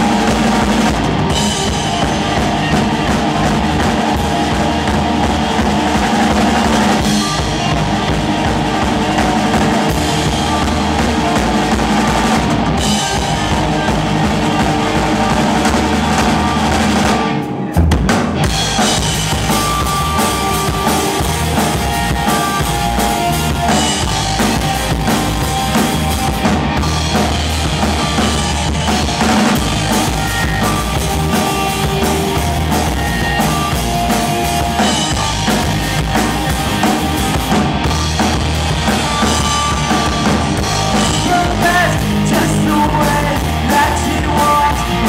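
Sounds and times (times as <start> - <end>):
bass guitar: 0.0 - 45.0
drum kit: 0.0 - 45.0
electric guitar: 0.0 - 45.0
rock band playing live: 0.0 - 45.0.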